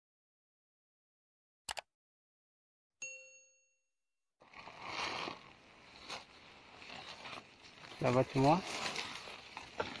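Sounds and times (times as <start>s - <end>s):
dry leaves rustling and crackling: 4.4s - 10.0s.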